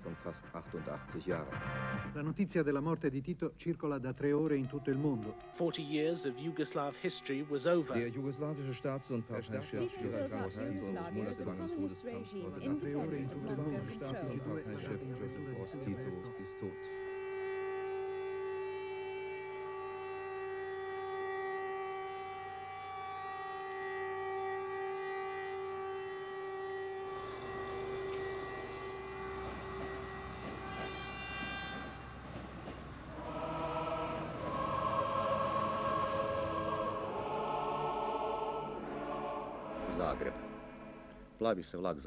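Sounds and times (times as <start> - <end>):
choir singing: 4.7 - 16.8, 33.0 - 41.4
siren steady note: 4.7 - 30.8, 33.1 - 41.3
passing train rumble: 24.7 - 41.4.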